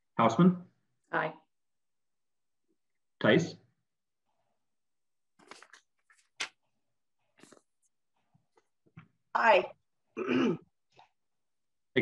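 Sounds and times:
person clearing throat: 0:10.2 - 0:10.7.

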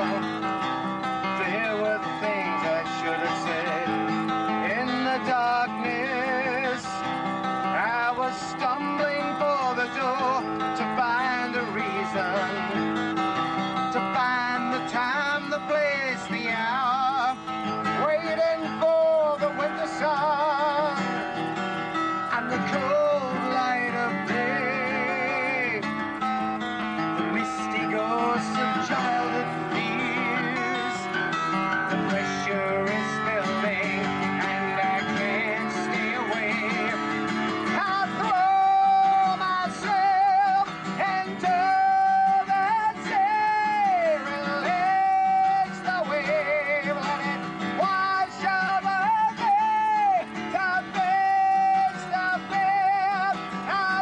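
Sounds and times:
acoustic guitar strummed and picked: 0:00.0 - 0:54.0
man singing with vibrato: 0:00.0 - 0:54.0.

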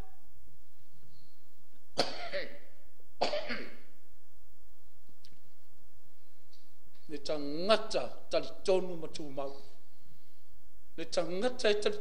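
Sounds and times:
man coughing: 0:02.0 - 0:03.8.

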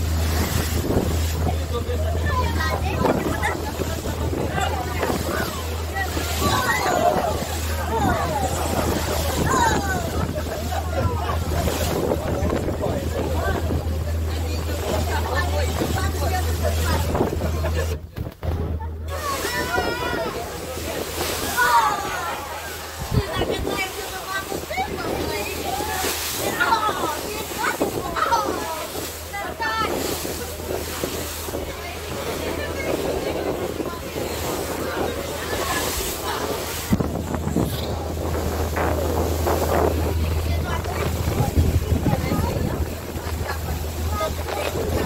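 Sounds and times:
boat engine drone: 0:00.0 - 0:45.0
water rushing along hull: 0:00.0 - 0:45.0
wind buffeting microphone: 0:00.0 - 0:45.0.

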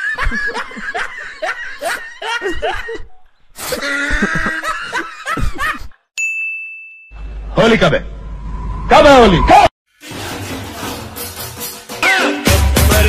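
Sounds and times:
laughter: 0:00.0 - 0:03.1, 0:03.7 - 0:06.0.

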